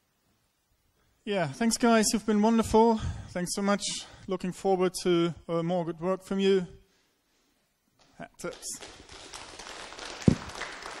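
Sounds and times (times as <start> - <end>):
audience applause: 8.8 - 11.0.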